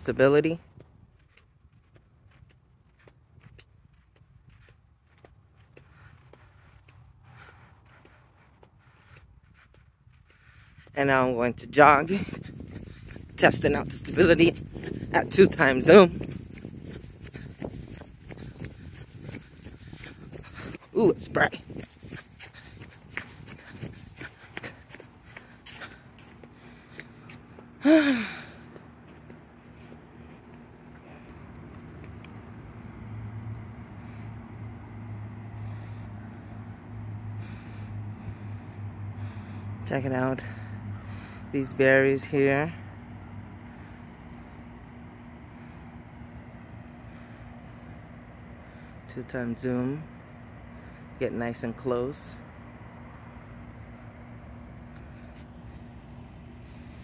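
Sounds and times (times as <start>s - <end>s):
car engine hum: 0.0s - 57.0s
woman sighing breathily: 27.8s - 28.6s.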